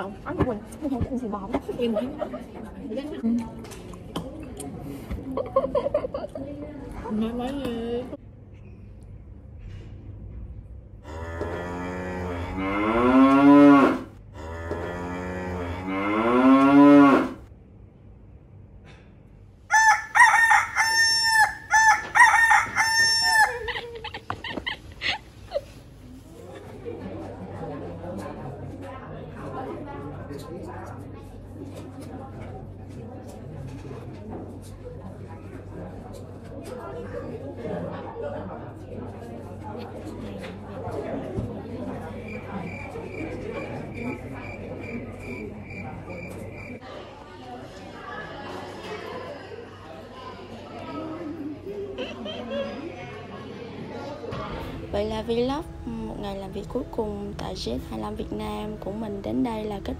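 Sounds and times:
rooster crowing: 0:19.7 - 0:23.9.

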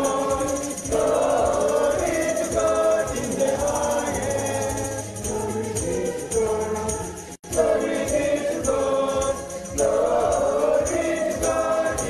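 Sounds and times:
choir singing a hymn: 0:00.0 - 0:12.0
steady percussive beat: 0:00.0 - 0:12.0.

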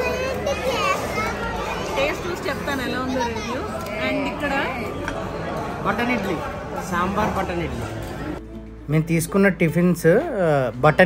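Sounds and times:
child's high voice: 0:00.0 - 0:02.0.

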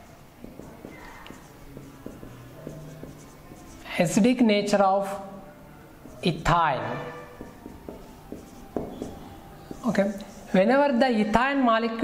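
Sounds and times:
marker squeaking on whiteboard: 0:00.0 - 0:04.7, 0:06.0 - 0:10.7.

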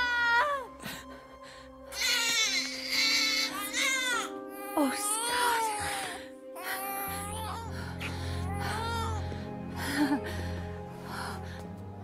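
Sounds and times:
newborn baby crying: 0:00.0 - 0:00.7, 0:01.9 - 0:07.8, 0:08.5 - 0:09.2.

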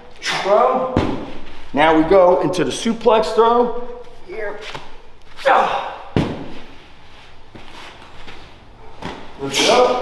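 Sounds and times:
medicine ball thud: 0:00.8 - 0:01.5, 0:06.1 - 0:06.8.

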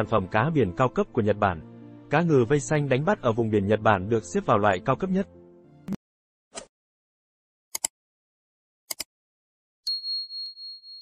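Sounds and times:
bell ding: 0:09.9 - 0:11.0.

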